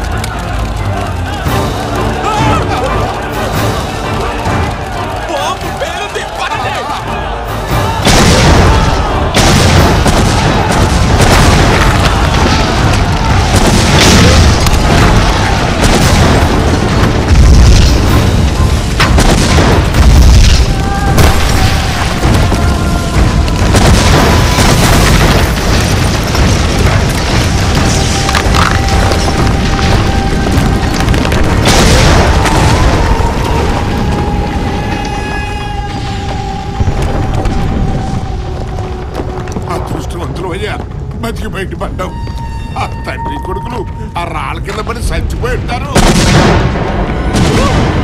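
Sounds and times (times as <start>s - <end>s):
dramatic background score: 0.0s - 48.0s
quarry blasting explosions: 0.0s - 48.0s.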